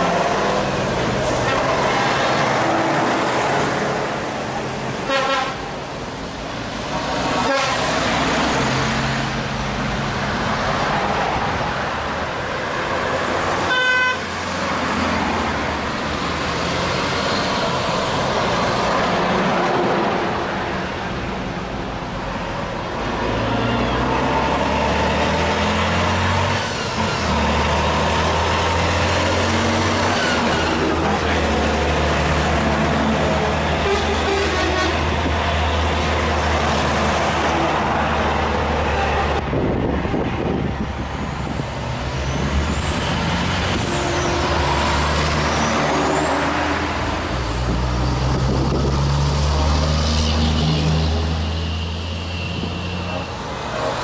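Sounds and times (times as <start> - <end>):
diesel trucks driving past: 0.0 - 54.0.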